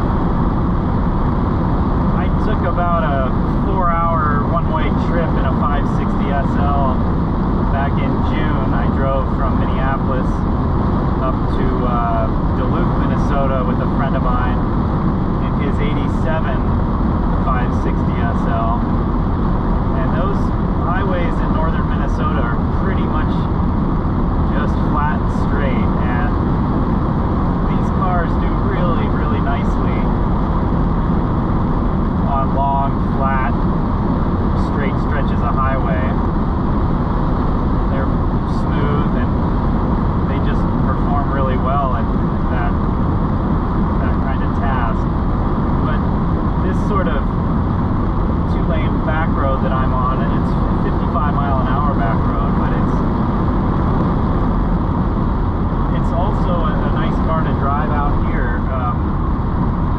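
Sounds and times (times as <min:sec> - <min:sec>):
car engine cruising: 0:00.0 - 0:59.9.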